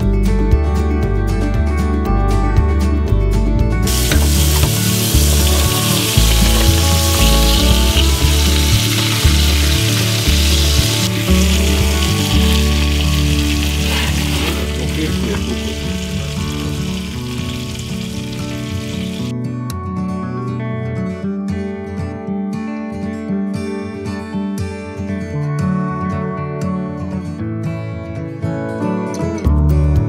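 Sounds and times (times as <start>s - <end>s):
soft music: 0.0s - 30.0s
meat sizzling in a pan: 3.9s - 19.3s.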